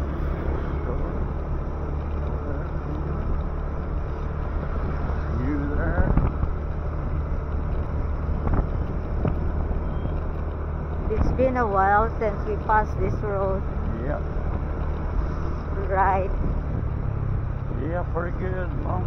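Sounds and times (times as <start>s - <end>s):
wind rushing over microphone: 3.2s - 9.8s.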